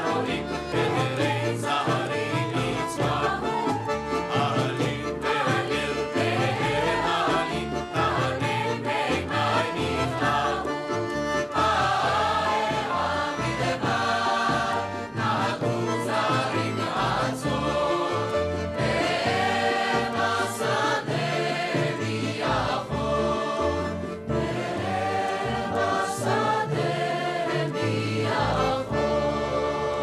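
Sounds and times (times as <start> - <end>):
instrumental backing with bass: 0.0 - 30.0
mixed choir singing: 0.0 - 30.0.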